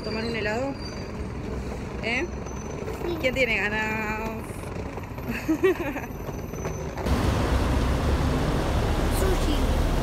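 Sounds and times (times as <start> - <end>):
street traffic rumble: 0.0 - 10.0
person laughing: 5.3 - 6.1.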